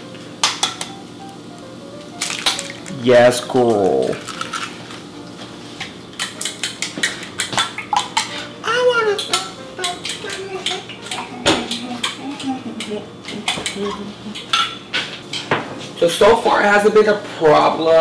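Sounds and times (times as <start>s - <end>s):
utensil clinking against bowl: 9.1s - 15.5s.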